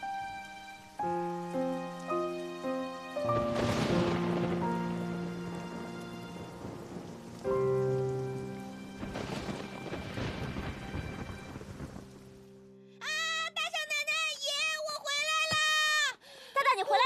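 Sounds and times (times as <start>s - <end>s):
rain falling: 0.0s - 12.8s
slow background music: 0.0s - 14.4s
thunder rumbling: 3.2s - 12.5s.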